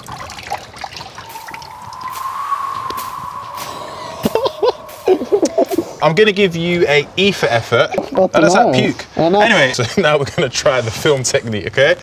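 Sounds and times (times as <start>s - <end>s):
water dripping and trickling: 0.0s - 6.0s
steady held tone: 1.0s - 6.6s.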